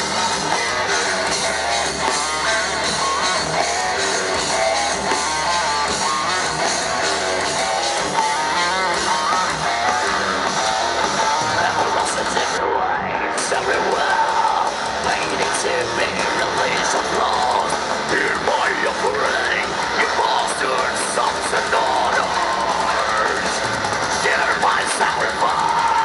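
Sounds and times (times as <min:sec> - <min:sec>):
harsh yelled vocal: 0:00.0 - 0:26.0
metal band playing live: 0:00.0 - 0:26.0.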